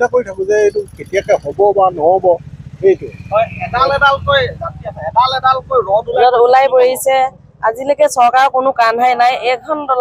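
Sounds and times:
man talking into a microphone: 0:00.0 - 0:06.3.

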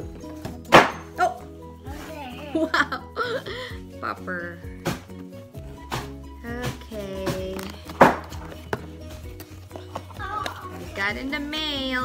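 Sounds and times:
cardboard knocks: 0:05.9 - 0:09.0.

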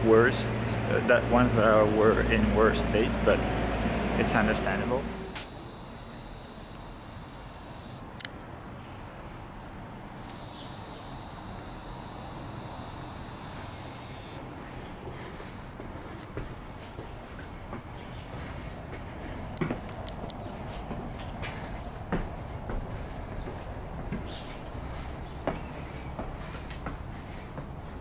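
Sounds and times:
sharp click: 0:05.3 - 0:05.6.

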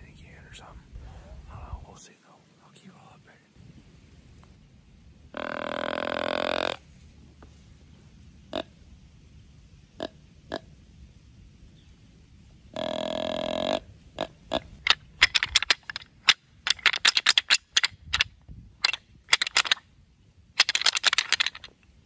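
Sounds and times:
deer grunt call: 0:05.4 - 0:06.8, 0:12.8 - 0:14.7.

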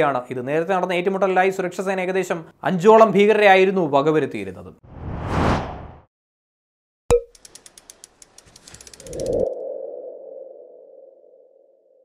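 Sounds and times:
rapid ticks: 0:07.3 - 0:09.5.

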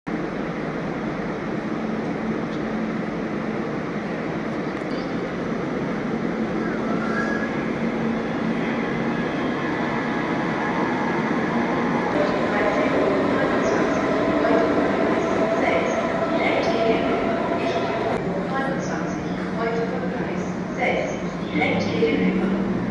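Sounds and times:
electric train rumble and hum: 0:00.1 - 0:22.9.

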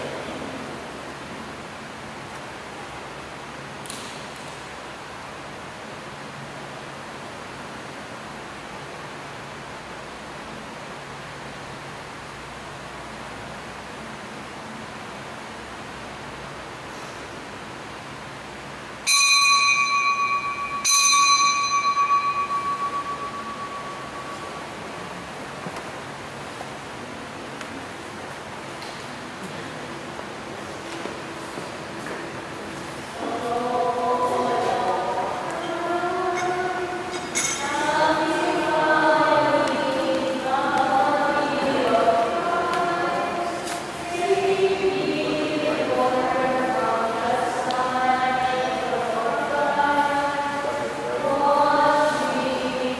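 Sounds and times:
small bell ringing: 0:19.1 - 0:24.6
choir singing a hymn: 0:32.3 - 0:52.9.

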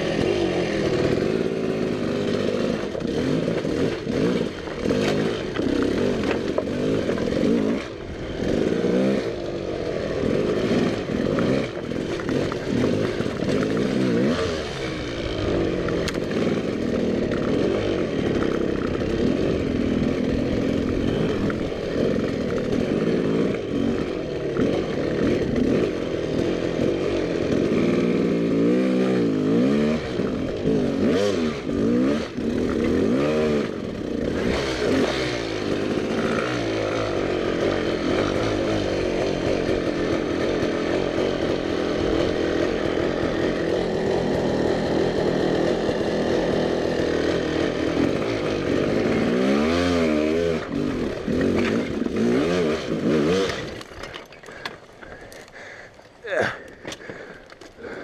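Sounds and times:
dirt bike engine revving: 0:00.0 - 0:58.0.

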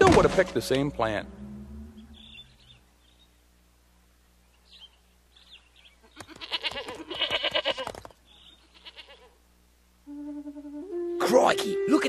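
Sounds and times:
faint high chirps: 0:01.2 - 0:03.4
goats bleating: 0:06.2 - 0:08.0, 0:08.6 - 0:09.4.

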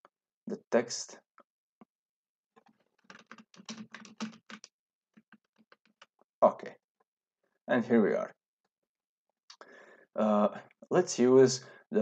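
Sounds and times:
keyboard keys clicking: 0:03.1 - 0:06.1.

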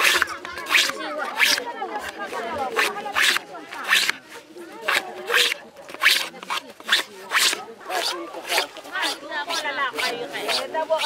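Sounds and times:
faint voices talking: 0:00.0 - 0:11.0
scraping dried leaf: 0:00.0 - 0:11.0.

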